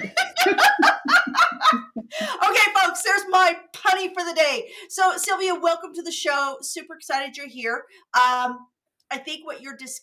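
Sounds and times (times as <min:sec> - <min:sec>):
woman laughing heartily: 0:00.0 - 0:02.4.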